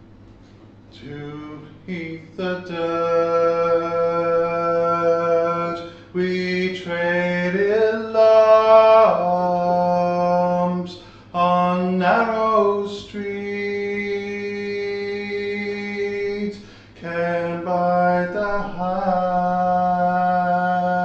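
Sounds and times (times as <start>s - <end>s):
man singing unaccompanied: 0.9s - 21.0s
man breathing: 5.8s - 6.2s, 10.9s - 11.4s, 16.6s - 17.0s.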